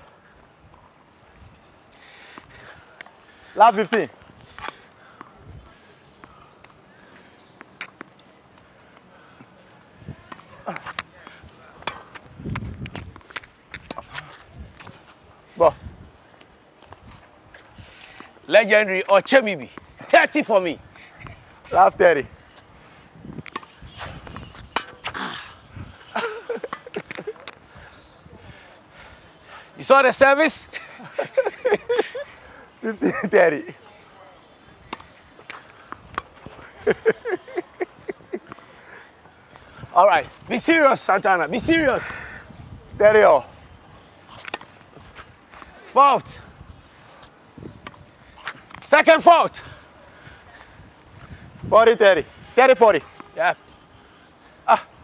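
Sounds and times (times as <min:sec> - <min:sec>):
tennis ball hit and bouncing: 0:11.8 - 0:14.2, 0:23.4 - 0:25.2
man laughing: 0:26.1 - 0:27.5, 0:30.7 - 0:33.4, 0:36.6 - 0:38.6.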